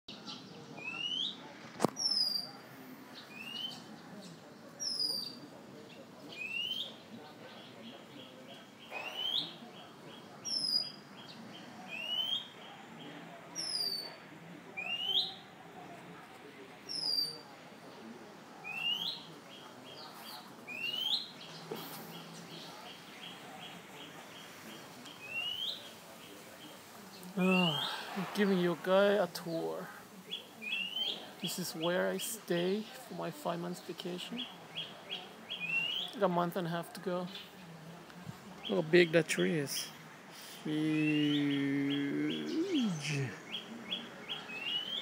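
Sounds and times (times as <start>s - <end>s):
bird whistling song: 2.0s - 2.6s, 11.9s - 12.5s
bird calling: 8.9s - 9.6s, 39.8s - 45.0s.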